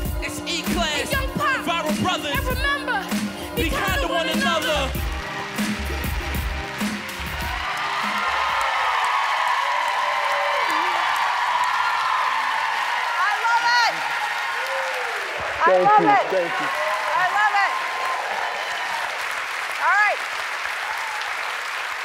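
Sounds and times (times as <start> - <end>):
hip hop backing beat: 0.0 - 8.5
audience applause and cheering: 0.0 - 22.0.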